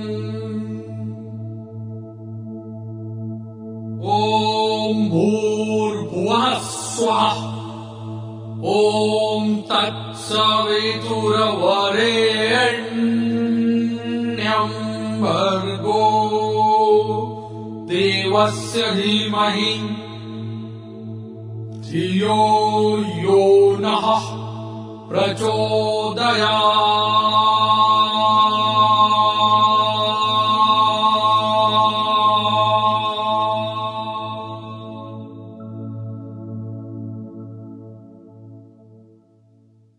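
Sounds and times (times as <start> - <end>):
man chanting in long held notes: 0.0 - 1.2, 4.0 - 20.8, 21.8 - 35.3
steady low drone: 0.0 - 38.6.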